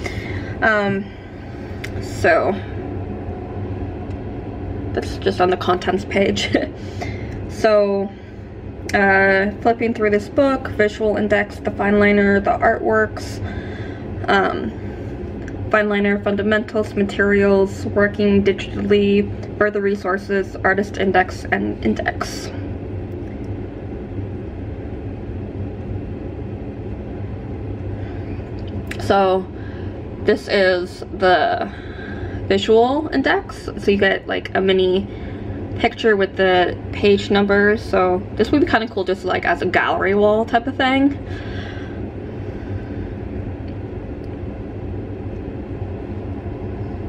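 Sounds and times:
low background rumble: 0.0s - 47.0s.

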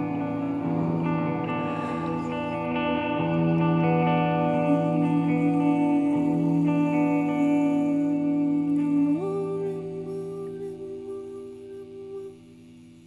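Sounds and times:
electric guitar ringing notes: 0.0s - 13.0s.

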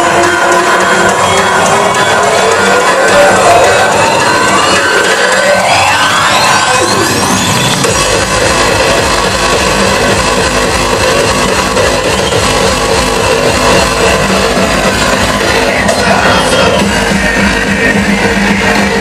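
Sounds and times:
hardcore electronic dance music: 0.0s - 19.0s
fast heavy kick drum: 7.8s - 19.0s.

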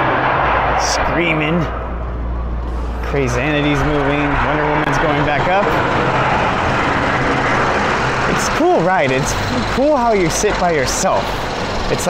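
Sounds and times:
roller coaster rushing on track: 2.6s - 12.0s.

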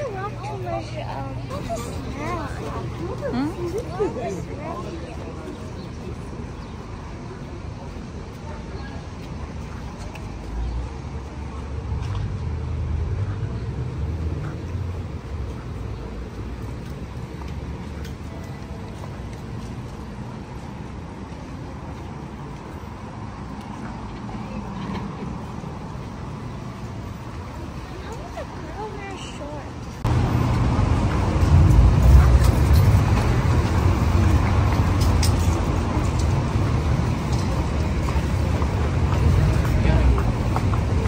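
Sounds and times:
car engines and tyres: 0.0s - 41.0s
heavy vehicle rumbling past: 30.0s - 41.0s.

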